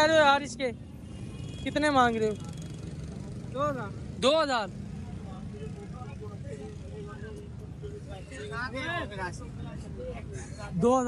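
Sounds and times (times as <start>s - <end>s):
rumble of motorcycle engines: 0.0s - 11.0s.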